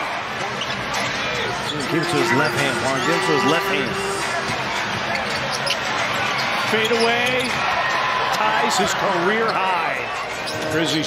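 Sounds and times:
arena crowd noise: 0:00.0 - 0:11.0
commentator speaking: 0:01.8 - 0:04.5.

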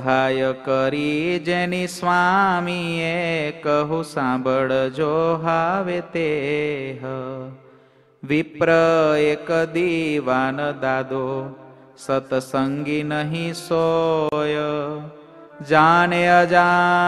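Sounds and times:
man chanting devotional verses: 0:00.0 - 0:17.0.

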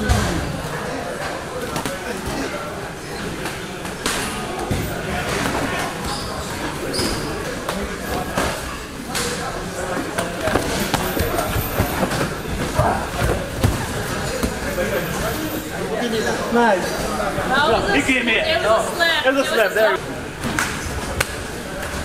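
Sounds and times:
indistinct talk: 0:00.0 - 0:22.0
training gym noise: 0:00.0 - 0:22.0.

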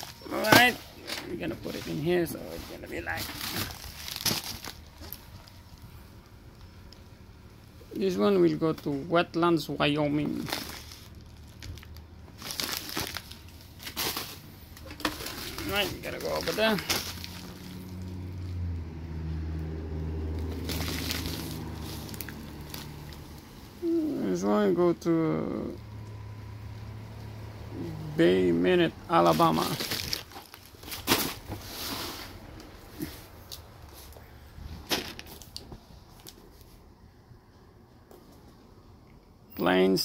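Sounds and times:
plastic envelopes rustling: 0:00.0 - 0:07.0, 0:09.8 - 0:18.5, 0:20.3 - 0:23.4, 0:29.1 - 0:36.8
plastic mailers crinkling: 0:00.0 - 0:07.1, 0:09.6 - 0:18.5, 0:20.3 - 0:23.4, 0:27.8 - 0:36.8.

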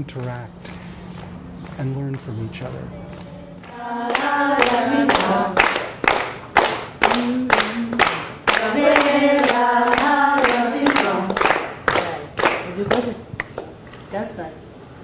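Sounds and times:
hand claps: 0:00.0 - 0:02.3, 0:03.1 - 0:13.8
group singing chant-like song: 0:03.6 - 0:06.2, 0:07.0 - 0:12.2.

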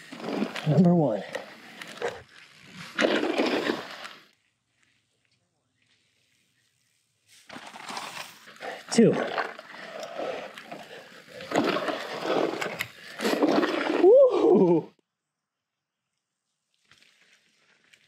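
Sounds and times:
bike tyres on dirt: 0:00.0 - 0:14.9, 0:16.0 - 0:18.0
rider whooping: 0:13.3 - 0:15.0.

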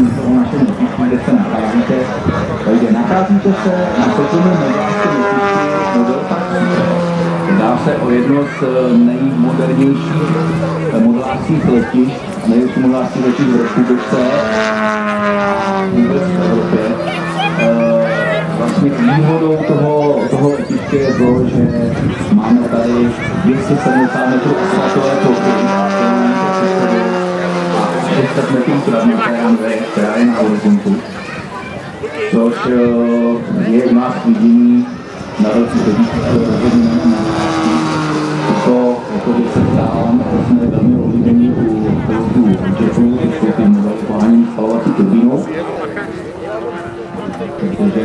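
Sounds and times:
model plane engine droning: 0:00.0 - 0:48.0.

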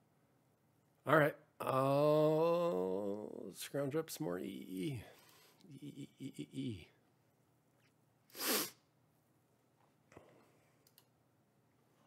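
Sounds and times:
man's short burst of breath: 0:08.3 - 0:08.8.

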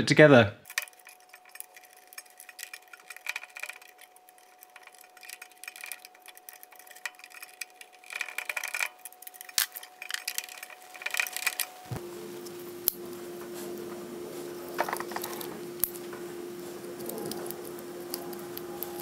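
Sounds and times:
screwdriver and wire clicks and rattles: 0:00.6 - 0:12.0, 0:14.7 - 0:19.0
faint steady whine: 0:00.6 - 0:19.0
low hum: 0:09.4 - 0:19.0.

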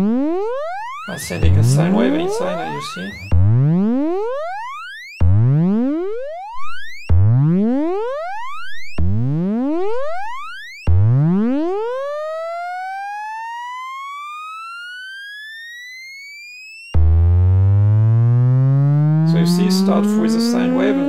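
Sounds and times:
synthesizer rising pitch sweeps: 0:18.1 - 0:21.0.

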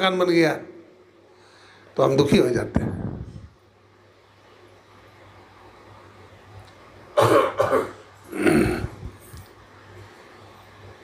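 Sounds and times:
man coughing: 0:07.2 - 0:09.0.

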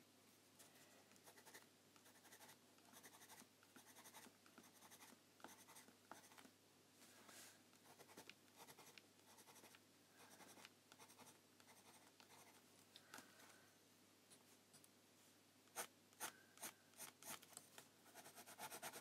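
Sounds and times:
pencil scratching on paper: 0:01.2 - 0:06.4, 0:07.8 - 0:12.6, 0:18.1 - 0:19.0.

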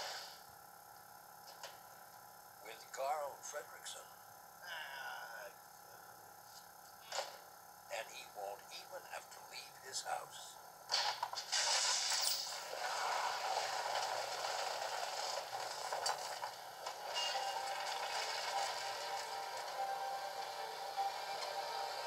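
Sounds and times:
music: 0:17.0 - 0:22.0.

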